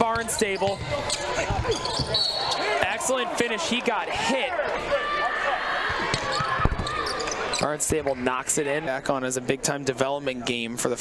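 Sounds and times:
sneakers squeaking: 0.0 - 2.8, 5.8 - 8.0
crowd noise: 0.0 - 11.0.

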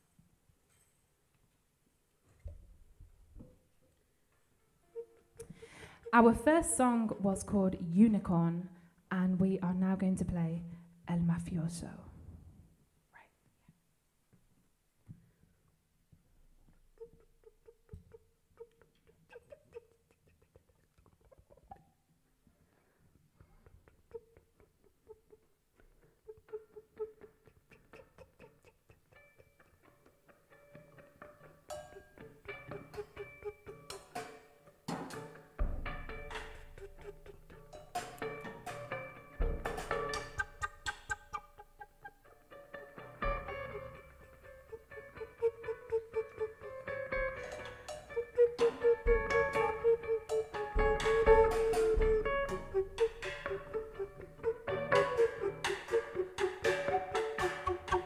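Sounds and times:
kick drum hits: 35.6 - 36.3
rock band playing: 46.9 - 58.0
clicking percussion: 54.9 - 58.0.

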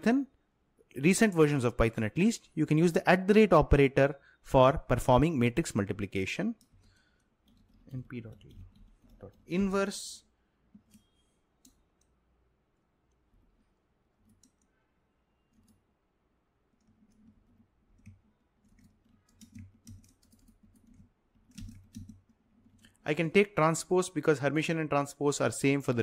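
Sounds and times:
keyboard keystrokes: 16.8 - 22.9.

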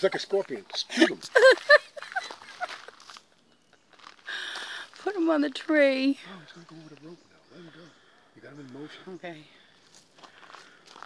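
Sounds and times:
woman speaking: 4.9 - 6.2.

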